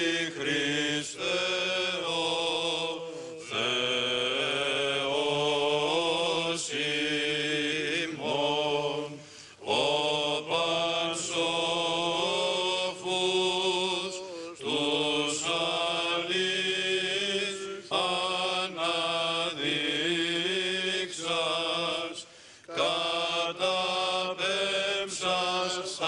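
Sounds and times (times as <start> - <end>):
chant melody: 0.0 - 26.0.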